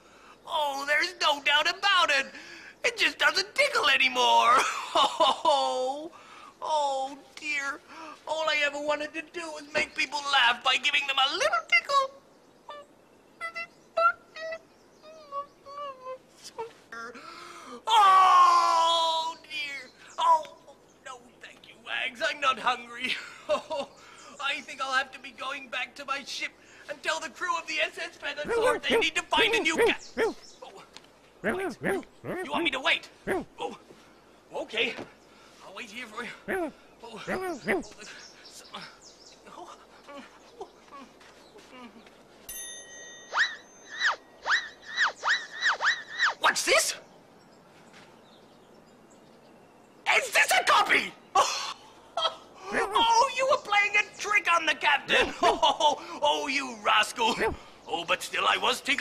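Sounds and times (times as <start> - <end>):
soft breathy sounds: 6.1 - 6.6, 7.8 - 8.3, 16.3 - 17.9
high chiming ding: 42.5 - 43.9
swooping whistle-like tones: 43.2 - 46.5.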